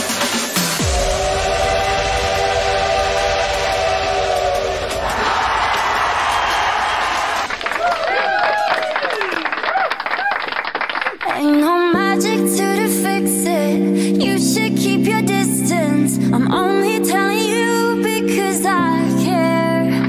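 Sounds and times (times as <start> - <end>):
electronic dance music: 0.0 - 7.6.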